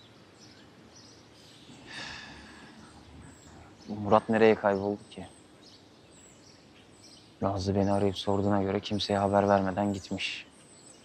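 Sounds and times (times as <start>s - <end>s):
faint high bird chirps: 0.0s - 11.0s
outdoor background noise: 0.0s - 11.0s
man speaking: 2.0s - 5.3s, 7.4s - 10.5s.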